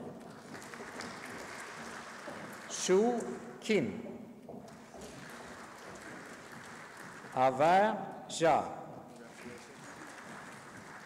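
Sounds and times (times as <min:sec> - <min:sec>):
audience applause in large hall: 0:00.0 - 0:03.4, 0:04.7 - 0:07.9, 0:09.1 - 0:11.0.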